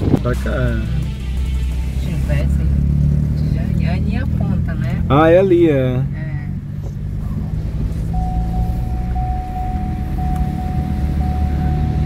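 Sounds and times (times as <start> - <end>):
car engine and road drone: 0.0 - 12.0
thin steady high tone: 8.2 - 12.0.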